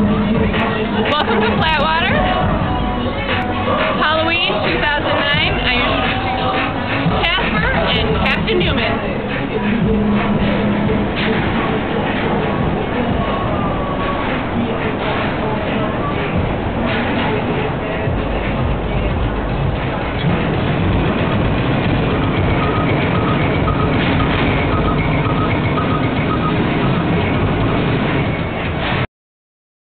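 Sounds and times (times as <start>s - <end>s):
indistinct voices: 0.0s - 29.0s
music playing: 0.0s - 29.0s
steady low rumble: 0.0s - 29.1s.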